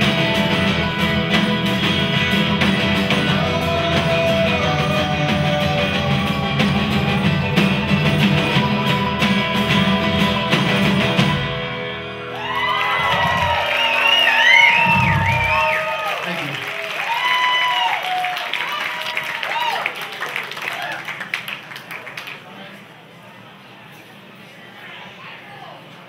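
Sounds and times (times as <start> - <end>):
strummed acoustic guitar: 0.0 - 12.3
drums: 0.0 - 21.7.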